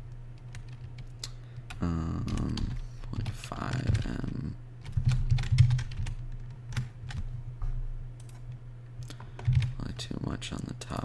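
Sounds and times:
steady low hum: 0.0s - 11.0s
computer keyboard keystrokes: 0.4s - 7.3s, 8.2s - 9.8s.

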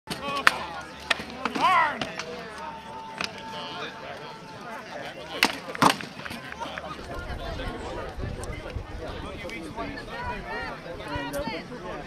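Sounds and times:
people's voices: 0.1s - 12.0s.

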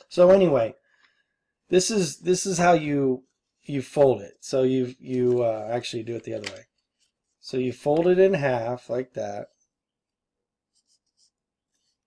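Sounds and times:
paper bill crinkling: 4.9s - 8.4s.

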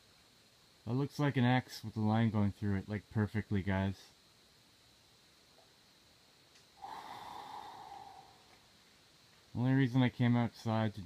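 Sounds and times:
person exhaling: 6.8s - 8.6s.

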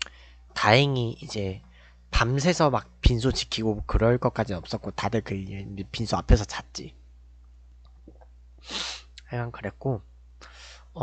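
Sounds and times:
man's sharp breath: 8.6s - 9.1s.

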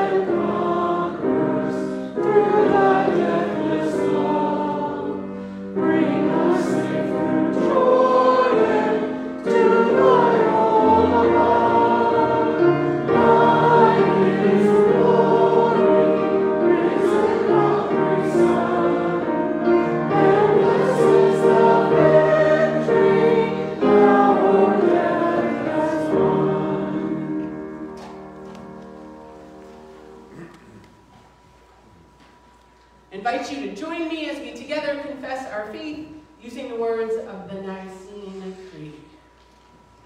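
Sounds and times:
group singing a hymn: 0.0s - 28.3s.

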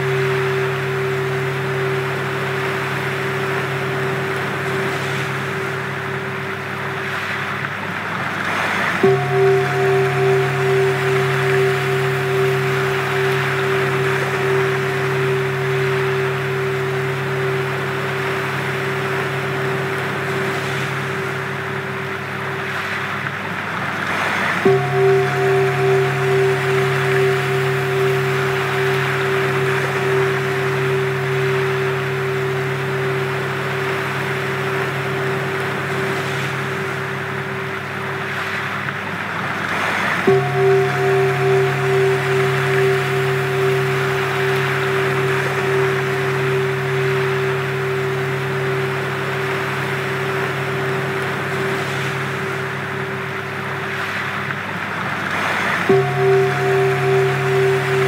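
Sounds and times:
low hum: 0.0s - 58.0s
steady pure tones: 0.0s - 58.0s.

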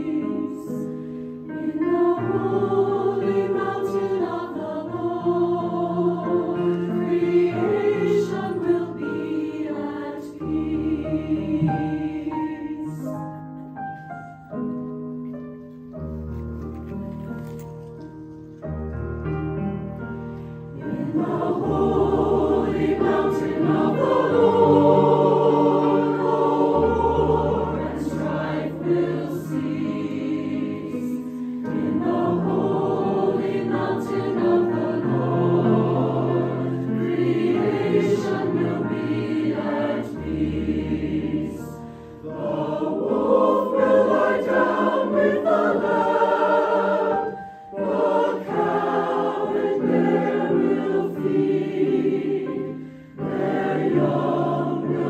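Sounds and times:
mixed choir singing: 0.0s - 13.5s, 20.7s - 55.0s
piano accompaniment: 0.0s - 55.0s.

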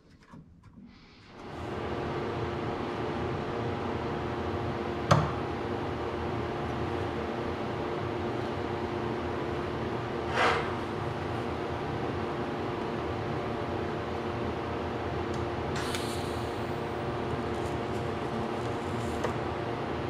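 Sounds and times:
fan humming: 1.4s - 20.0s.

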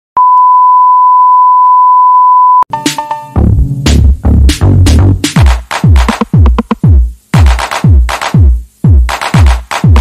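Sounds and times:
heavy electronic beat: 2.7s - 10.0s.

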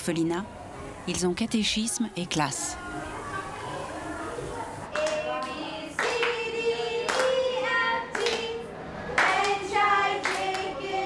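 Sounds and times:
hand claps: 4.9s - 8.5s, 9.2s - 9.6s, 10.2s - 10.7s.

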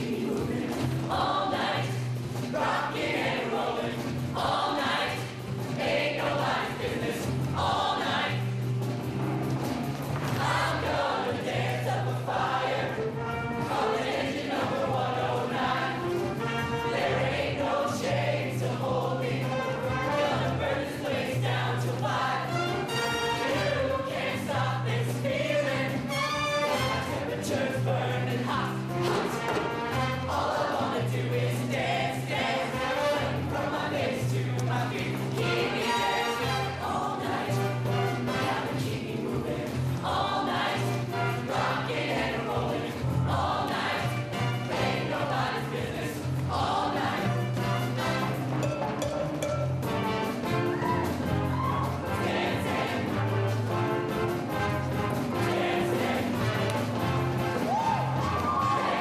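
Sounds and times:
choir singing upbeat song: 0.0s - 9.0s, 9.7s - 59.0s.

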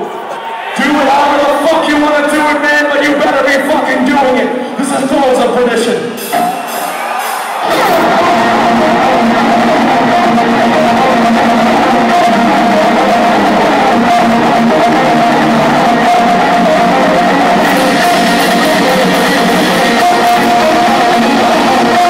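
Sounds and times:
heavy metal band playing: 0.8s - 22.0s.

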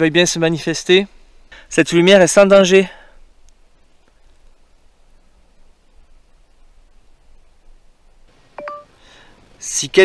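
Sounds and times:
electronic beep: 8.6s - 8.9s.

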